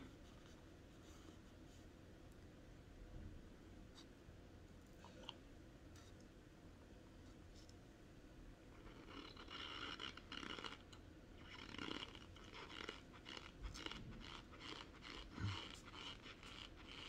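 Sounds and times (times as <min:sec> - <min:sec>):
chewing dry powder crunch: 0:08.8 - 0:17.0.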